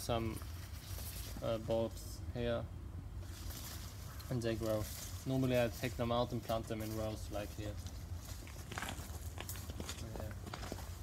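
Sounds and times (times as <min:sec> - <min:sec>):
leaves rustling: 0:00.0 - 0:02.4, 0:03.1 - 0:11.0
low steady hum: 0:00.0 - 0:11.0
footsteps on bark mulch: 0:03.2 - 0:11.0.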